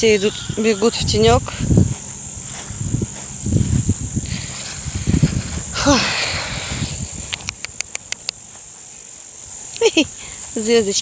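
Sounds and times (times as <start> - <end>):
person's voice: 0.0 - 1.7, 5.8 - 6.5
insects chirring: 0.0 - 11.0
breathy rush: 4.2 - 7.3
sharp clicks: 7.2 - 8.4.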